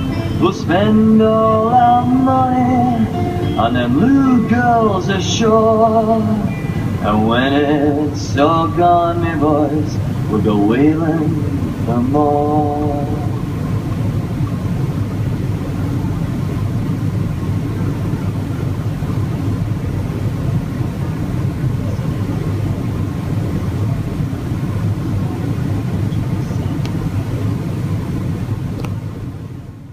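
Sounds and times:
low background hum: 0:00.0 - 0:29.9.

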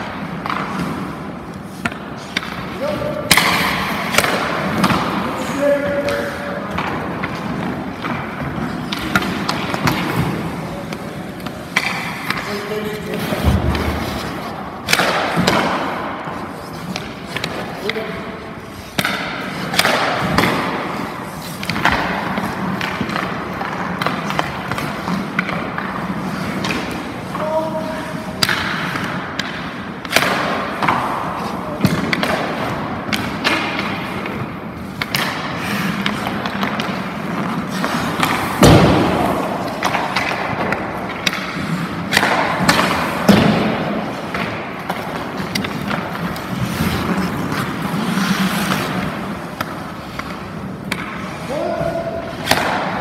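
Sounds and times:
skate blades scraping ice: 0:00.0 - 0:53.0.

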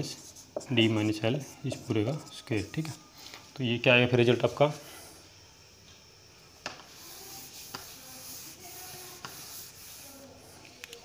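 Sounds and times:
hand rubbing a whiteboard: 0:00.0 - 0:03.0, 0:06.9 - 0:10.6.

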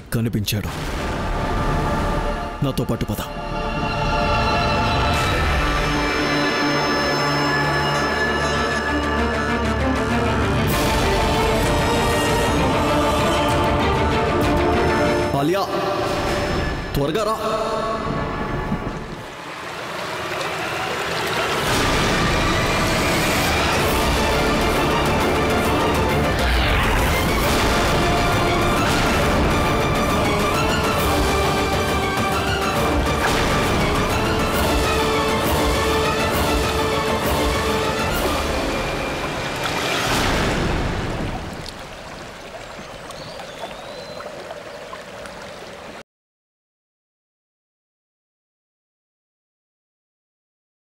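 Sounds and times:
dramatic rushing noisy score: 0:17.4 - 0:41.5.

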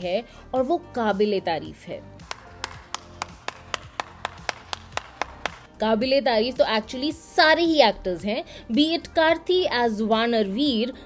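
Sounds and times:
background music: 0:00.0 - 0:11.0
person clapping hands: 0:02.2 - 0:05.7.

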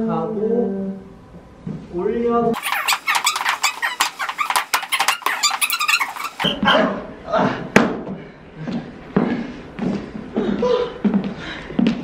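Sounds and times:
dance shoes squeaking on wood: 0:02.6 - 0:06.8.

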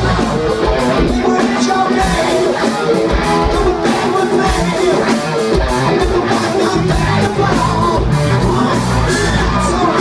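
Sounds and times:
electric guitars: 0:00.0 - 0:10.0
rock band playing live: 0:00.0 - 0:10.0.

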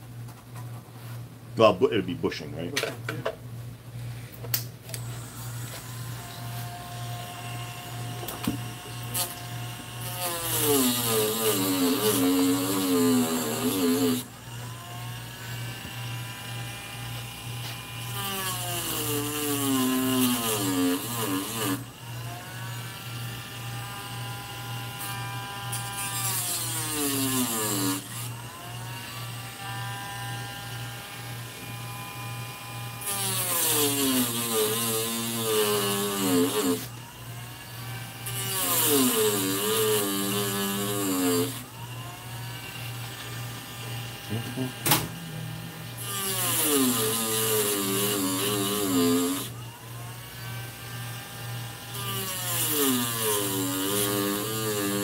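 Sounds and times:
handheld power tool whining: 0:04.9 - 0:55.0.

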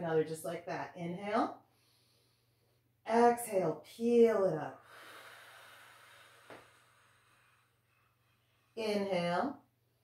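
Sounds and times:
woman exhaling: 0:04.8 - 0:07.8.

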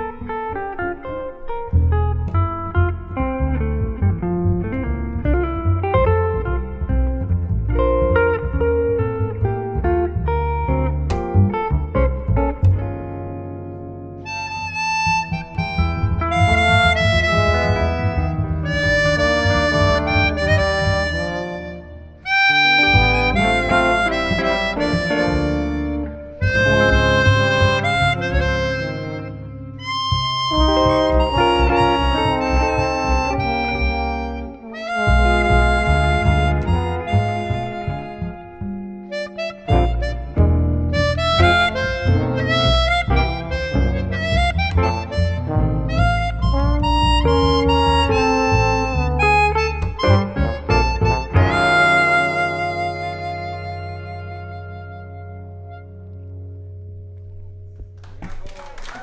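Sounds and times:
small jazz band: 0:00.0 - 0:58.9
chromatic harmonica melody: 0:14.2 - 0:56.8.

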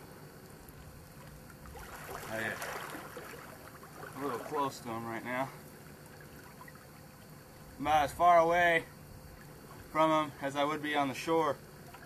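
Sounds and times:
river water trickling over rocks: 0:00.4 - 0:07.7.

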